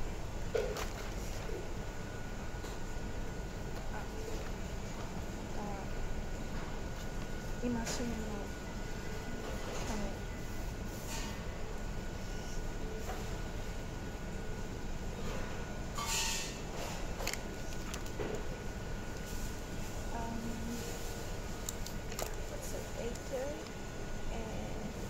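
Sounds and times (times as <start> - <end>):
paper pages rustling: 17.2 - 18.5.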